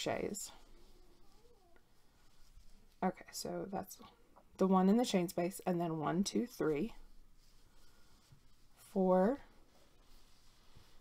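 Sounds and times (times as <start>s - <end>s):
yarn rustling through crochet hook: 0.0s - 11.0s.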